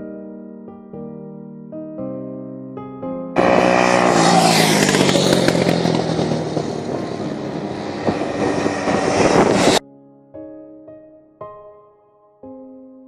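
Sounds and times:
quad bike engine passing by: 3.4s - 9.8s.

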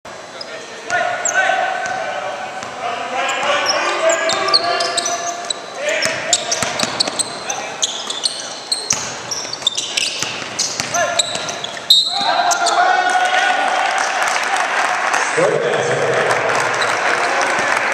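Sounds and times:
sneakers squeaking: 0.1s - 13.1s
basketball bouncing: 6.0s - 7.4s, 8.8s - 12.6s
people shouting: 12.1s - 14.6s.

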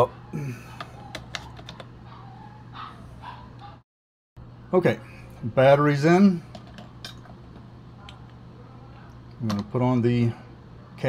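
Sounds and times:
low steady hum: 4.4s - 11.0s.

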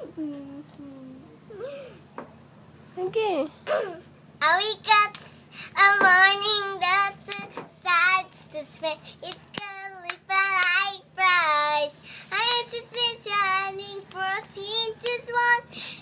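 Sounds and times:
girl singing: 4.4s - 16.0s.

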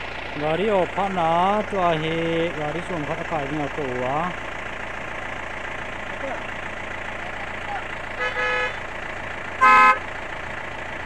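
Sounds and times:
vehicle engine idling: 0.0s - 11.0s
car horn toots: 8.2s - 8.8s, 9.6s - 10.1s.

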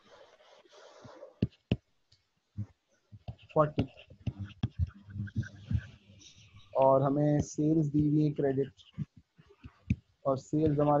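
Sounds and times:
man murmuring: 3.5s - 6.0s, 10.3s - 11.0s.

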